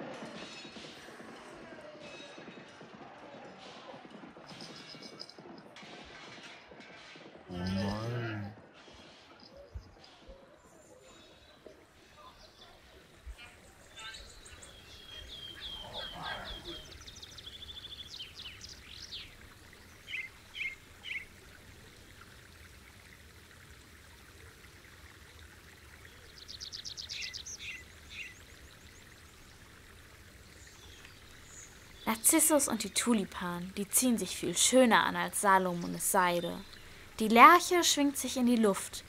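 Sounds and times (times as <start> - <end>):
songbirds chirping and trilling: 8.9 - 22.5, 24.6 - 39.0.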